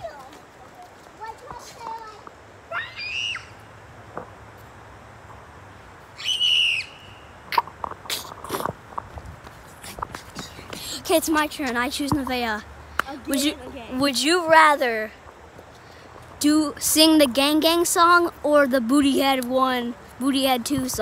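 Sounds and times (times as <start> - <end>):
girl shouting: 1.5 - 3.5.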